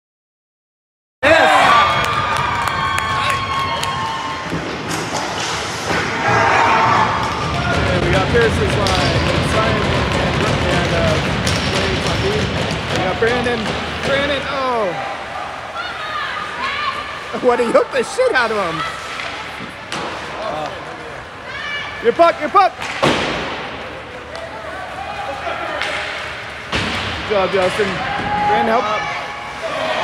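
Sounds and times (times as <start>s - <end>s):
spectators shouting: 1.2s - 4.6s, 6.0s - 8.7s, 14.3s - 19.2s, 24.1s - 26.4s, 27.8s - 30.0s
hockey sticks and puck clacking: 4.5s - 14.7s, 18.9s - 20.9s, 22.3s - 24.6s, 25.6s - 28.9s.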